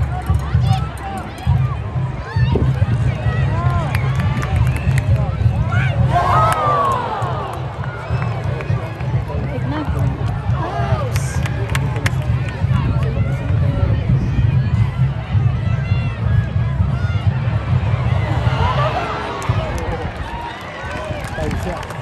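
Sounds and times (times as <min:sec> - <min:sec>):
crowd shouting and cheering: 0:00.0 - 0:22.0
spectators shouting: 0:05.6 - 0:13.9, 0:14.6 - 0:22.0.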